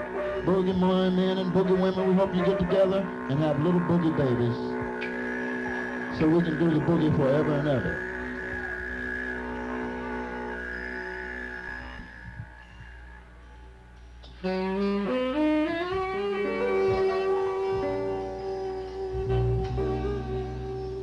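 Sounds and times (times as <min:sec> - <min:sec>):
jazz band playing: 0:00.0 - 0:04.0, 0:14.4 - 0:21.0
saxophone sliding up in pitch: 0:00.0 - 0:21.0.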